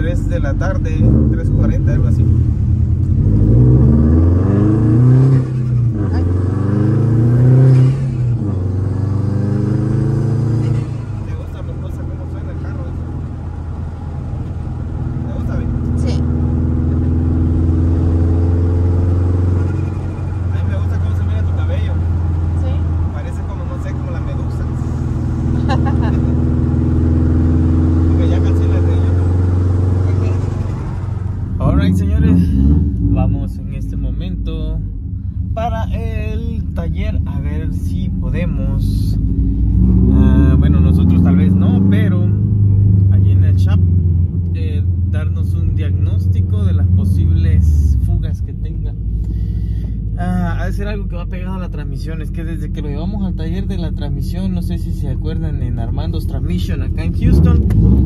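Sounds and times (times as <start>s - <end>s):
car engine while driving: 0.0s - 58.0s.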